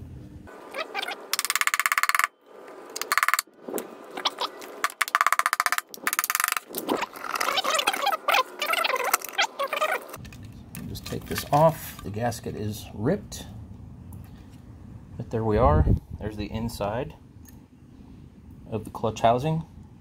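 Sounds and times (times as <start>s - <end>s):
rapid buzzing clicks: 0.8s - 2.3s, 2.9s - 3.5s, 4.1s - 10.2s.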